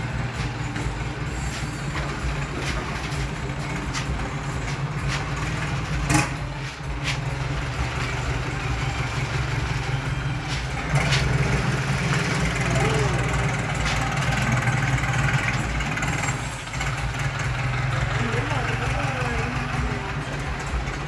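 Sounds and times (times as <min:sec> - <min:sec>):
boat engine idling: 0:00.0 - 0:21.0.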